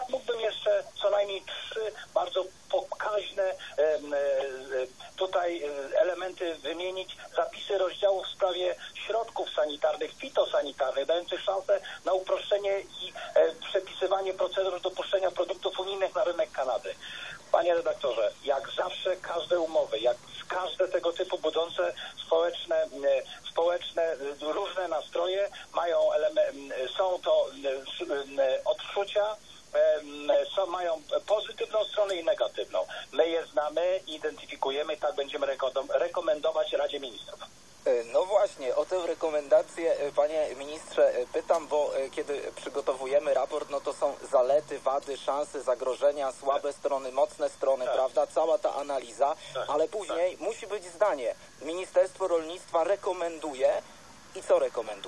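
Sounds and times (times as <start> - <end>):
radio-like speech: 0.0 - 55.0.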